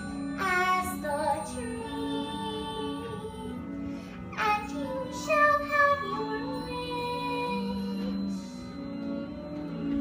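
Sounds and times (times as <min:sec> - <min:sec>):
girl singing wordless melody: 0:00.0 - 0:10.0
sustained instrumental accompaniment: 0:00.0 - 0:10.0.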